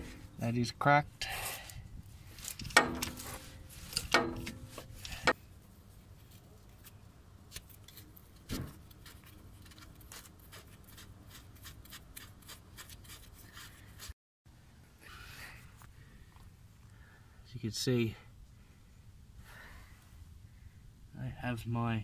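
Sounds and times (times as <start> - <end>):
ratchet clanking on metal: 2.7 - 5.3.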